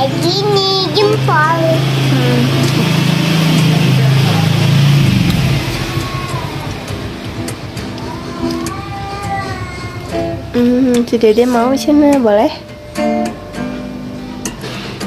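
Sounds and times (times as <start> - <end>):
vehicle engine running: 0.0 - 15.0.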